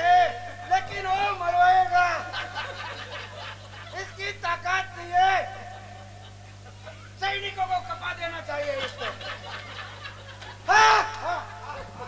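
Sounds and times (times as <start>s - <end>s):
low electrical hum: 0.0s - 12.0s
man laughing through loudspeakers: 0.1s - 7.4s, 8.6s - 12.0s.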